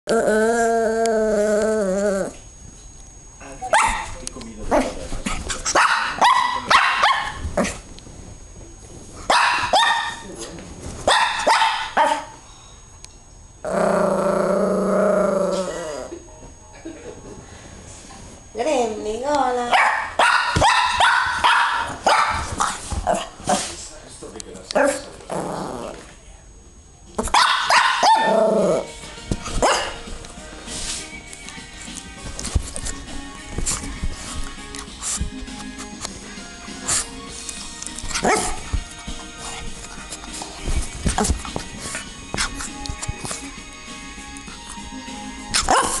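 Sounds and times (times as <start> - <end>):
puppy barking and yapping: 5.7 - 7.4, 9.3 - 10.2, 11.1 - 12.3, 19.8 - 23.3, 27.3 - 28.4, 29.6 - 30.0, 38.2 - 38.6, 45.6 - 46.0
background music: 28.3 - 46.0
scuffling: 36.8 - 43.5.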